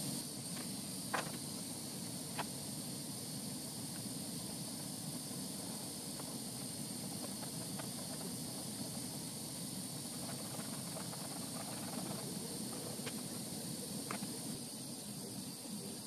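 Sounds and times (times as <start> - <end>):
torch flame hissing: 0.0 - 16.0.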